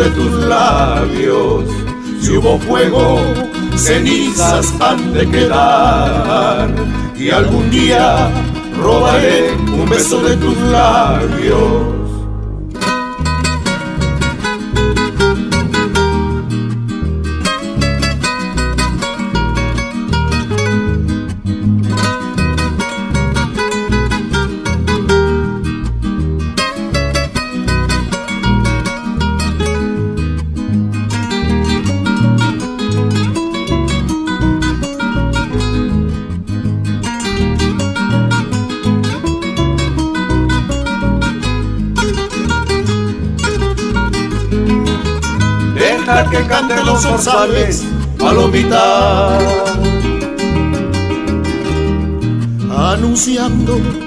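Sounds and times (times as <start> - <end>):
acoustic guitars playing: 0.0 - 54.0.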